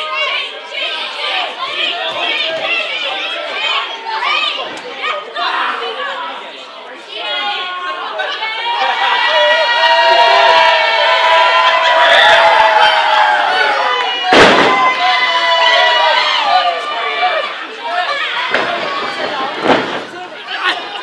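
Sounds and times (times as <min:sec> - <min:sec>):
crowd shouting and cheering: 0:00.0 - 0:21.0
loud smack: 0:14.3 - 0:14.9.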